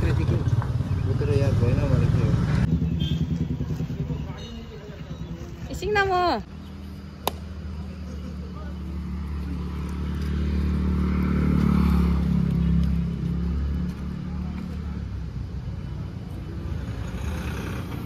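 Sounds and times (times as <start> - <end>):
vehicle engine humming: 0.0 - 18.0.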